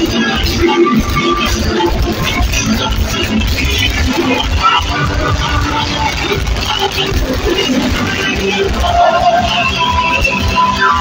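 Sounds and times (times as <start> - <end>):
live gospel music: 0.0 - 11.0.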